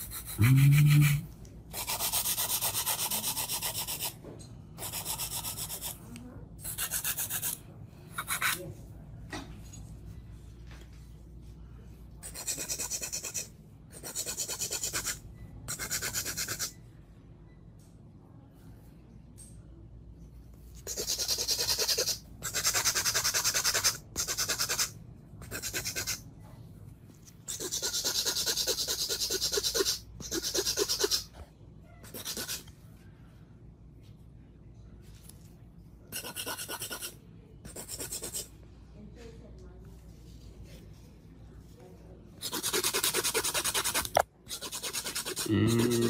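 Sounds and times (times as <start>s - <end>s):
nail buffer scratching nails: 0.0s - 4.2s, 4.8s - 7.6s, 8.2s - 8.6s, 12.2s - 16.8s, 20.8s - 26.2s, 27.5s - 31.3s, 32.1s - 32.7s, 36.2s - 38.5s, 42.4s - 46.0s.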